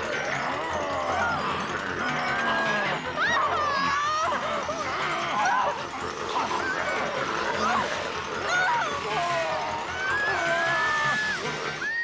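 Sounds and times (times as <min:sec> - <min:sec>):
voices crying out: 0:00.0 - 0:12.0.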